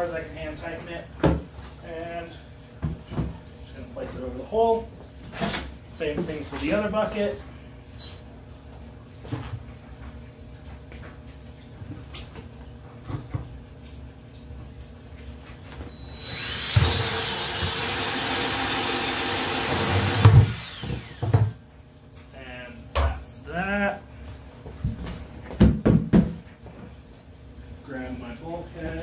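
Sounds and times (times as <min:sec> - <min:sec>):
cordless drill whining: 0:16.0 - 0:21.3
knocks of bucket handled: 0:24.8 - 0:26.5.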